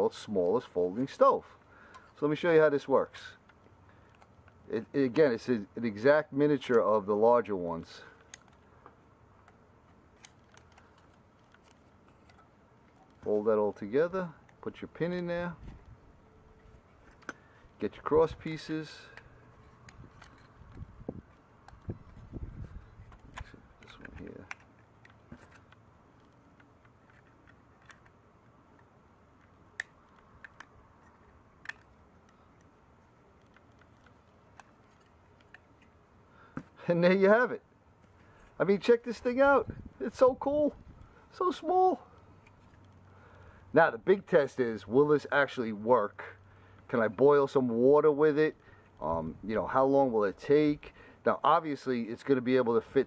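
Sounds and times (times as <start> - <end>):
aluminum parts clicking together: 8.1 - 13.3, 18.5 - 22.2, 23.0 - 36.0.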